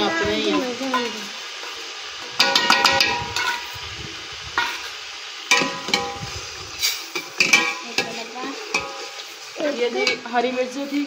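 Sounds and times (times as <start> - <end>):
frying sizzle: 0.0 - 11.0.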